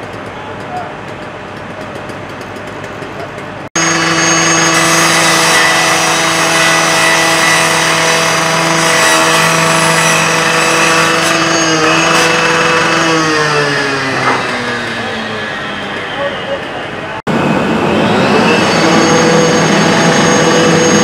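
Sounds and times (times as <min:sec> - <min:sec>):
rescue saw engine running: 0:00.0 - 0:21.0
saw blade grinding metal: 0:03.8 - 0:16.7.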